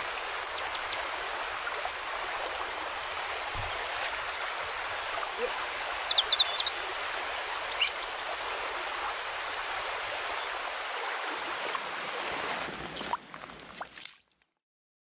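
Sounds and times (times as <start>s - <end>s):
river water rushing and gurgling: 0.0s - 14.2s
small water splashes: 0.0s - 14.6s.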